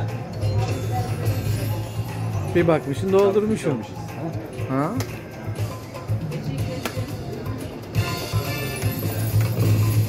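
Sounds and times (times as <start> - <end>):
slot machine music with low beat: 0.0 - 10.0.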